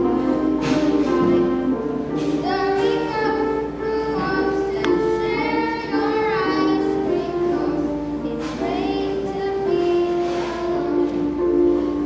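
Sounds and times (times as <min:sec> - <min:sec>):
children singing: 0:02.2 - 0:12.0.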